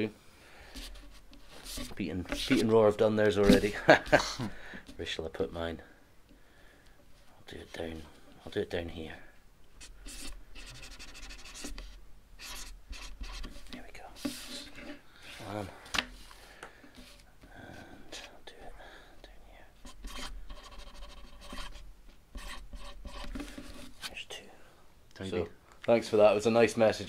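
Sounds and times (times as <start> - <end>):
pen scratching on cardboard: 0.7 - 2.7, 9.8 - 15.0, 19.8 - 24.0.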